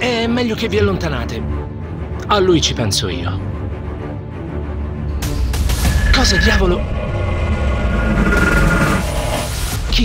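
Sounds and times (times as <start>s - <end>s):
loud low rumble drone: 5.9s - 9.8s.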